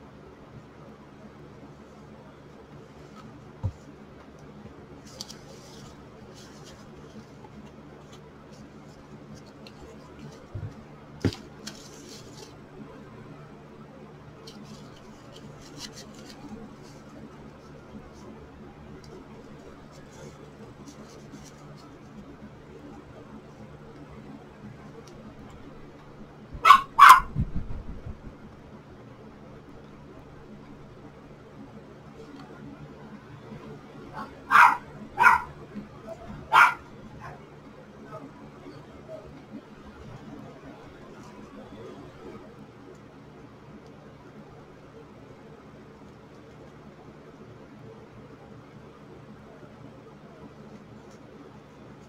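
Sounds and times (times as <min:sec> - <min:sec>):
steady low hum: 0:00.0 - 0:52.0
ribbon rustling: 0:02.7 - 0:12.8, 0:14.4 - 0:23.6
dog barking: 0:26.6 - 0:27.3, 0:34.2 - 0:35.5, 0:36.5 - 0:37.4.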